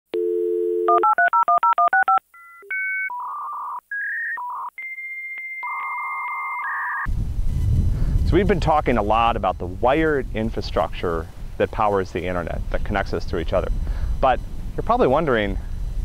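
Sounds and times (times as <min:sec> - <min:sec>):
dial tone: 0:00.2 - 0:07.1
touch-tone digits: 0:00.2 - 0:07.1
modem handshake whistles and warbles: 0:02.4 - 0:07.1
low outdoor rumble: 0:07.1 - 0:16.0.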